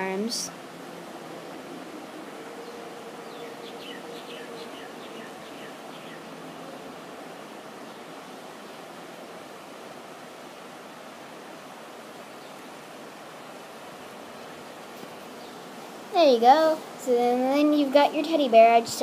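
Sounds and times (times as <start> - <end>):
outdoor background hiss: 0.0 - 19.0.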